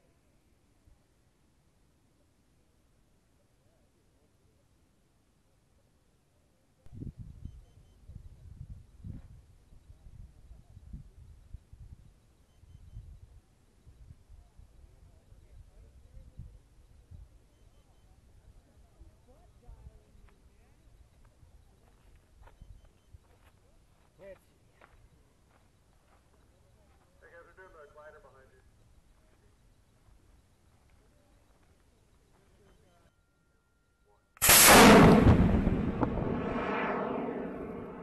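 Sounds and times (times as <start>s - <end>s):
faint distant voices: 0.0s - 8.2s, 9.6s - 34.4s
wind buffeting microphone: 6.9s - 12.2s, 35.0s - 36.7s
short high beeps: 7.4s - 8.0s, 12.5s - 13.0s.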